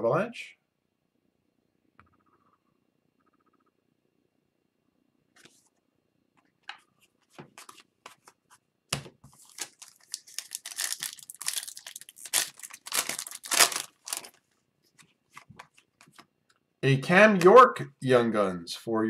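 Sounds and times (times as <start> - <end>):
cards being handled: 6.7 - 14.4, 15.0 - 16.3
foil wrapper crinkling: 9.4 - 14.5.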